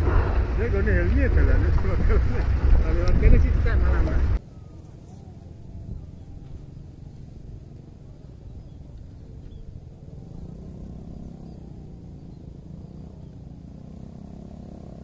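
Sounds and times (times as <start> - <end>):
low rumble: 0.0 - 4.4.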